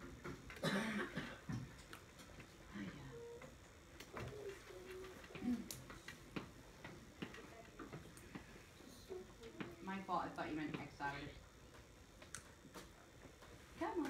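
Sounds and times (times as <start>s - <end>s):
faint murmuring voices: 2.7s - 10.9s
small clicks and taps: 11.6s - 14.0s.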